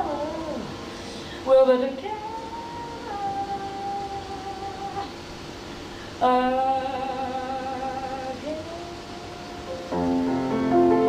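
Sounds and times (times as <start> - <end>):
woman singing long note: 0.0 - 5.1, 6.2 - 10.1.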